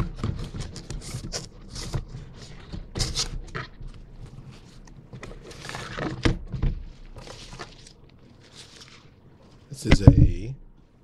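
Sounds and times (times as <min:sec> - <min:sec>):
fabric pack rustling and scraping: 0:00.0 - 0:09.8.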